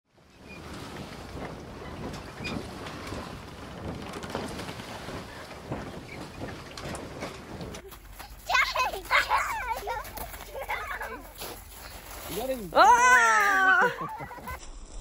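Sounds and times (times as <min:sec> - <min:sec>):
rushing wind and water: 0:00.1 - 0:14.6
small crackles and splashes: 0:00.4 - 0:08.4.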